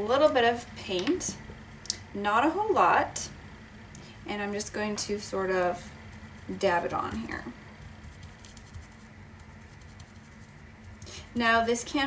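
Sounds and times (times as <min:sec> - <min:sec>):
brush dabbing paint soft taps: 0:06.1 - 0:11.1.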